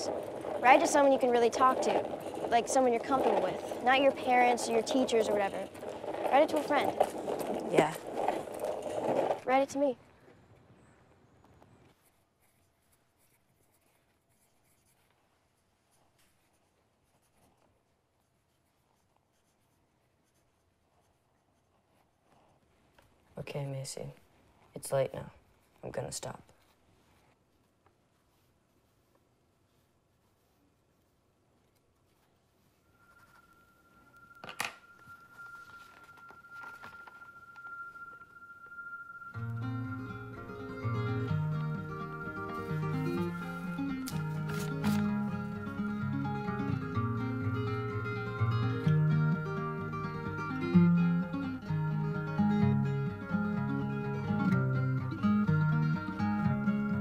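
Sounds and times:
acoustic guitar music: 0.0 - 10.0, 34.1 - 57.0
pen scratching on paper: 11.9 - 22.6
faint high tone: 32.6 - 45.8.

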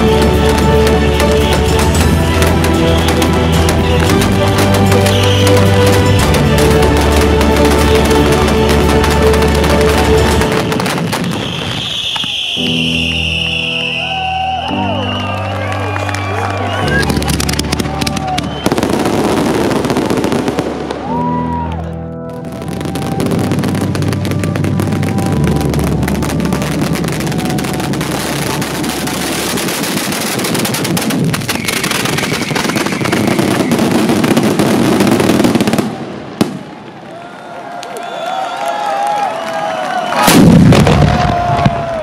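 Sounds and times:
background music with bass: 0.0 - 10.8
firecrackers crackling: 0.0 - 21.7, 22.4 - 42.0.

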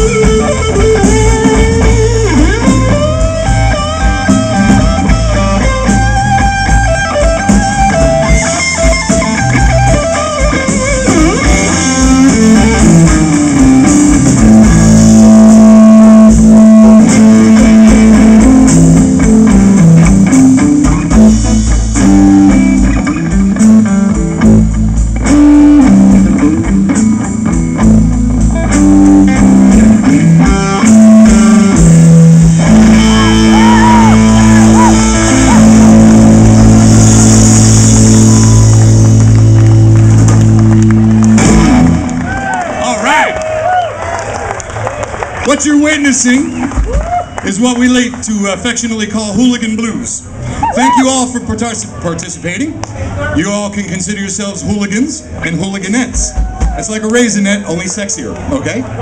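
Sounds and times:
steady drum beat: 0.0 - 42.7, 55.9 - 57.1
electric guitar lead: 0.0 - 49.5
blues band playing: 0.0 - 59.0
rising and falling whoops: 32.8 - 37.1, 40.8 - 45.1, 46.6 - 47.4, 50.6 - 51.1.

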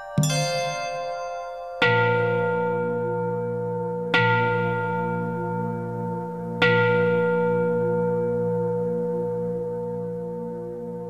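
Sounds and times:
bell ringing: 0.0 - 2.5.

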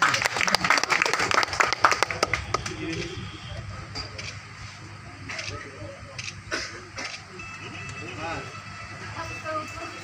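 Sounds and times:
crowd clapping: 0.0 - 3.2
voices: 0.1 - 10.0.

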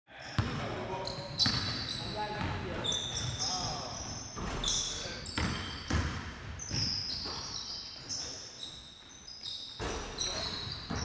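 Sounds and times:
sneakers squeaking: 0.2 - 11.0
basketball bouncing on wooden floor: 1.4 - 1.7, 5.4 - 7.4.

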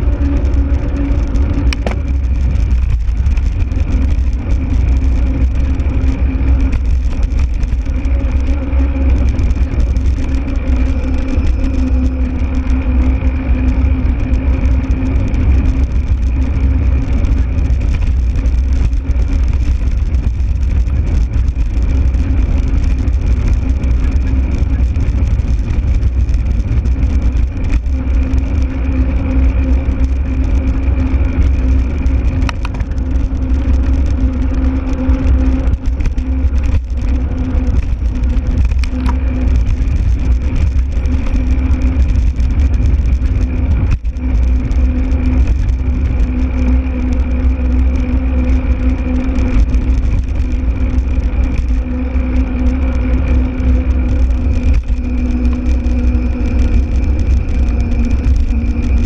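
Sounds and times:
vehicle motor drone: 0.0 - 59.0
wind rumble on microphone: 0.0 - 59.0
faint high whine: 3.7 - 15.1.

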